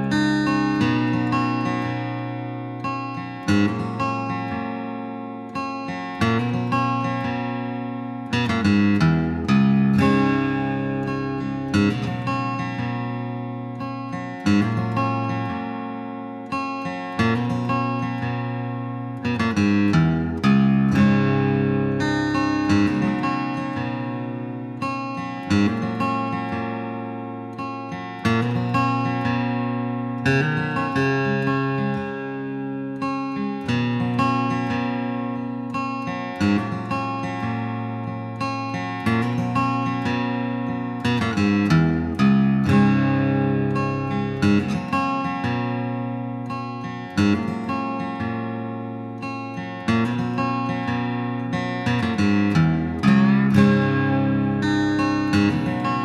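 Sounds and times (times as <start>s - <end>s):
acoustic guitar chords: 0.0s - 56.0s.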